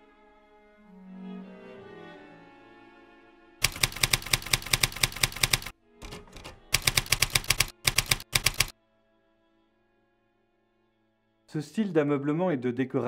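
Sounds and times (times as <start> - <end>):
typewriter keys clacking: 3.6 - 8.7.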